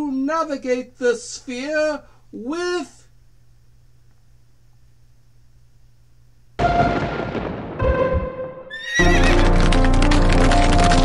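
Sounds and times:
horse whinnying: 0:08.7 - 0:09.6.

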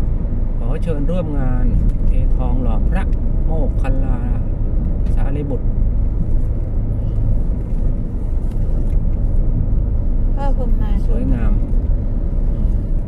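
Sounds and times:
car driving heard from inside: 0:00.0 - 0:13.0.

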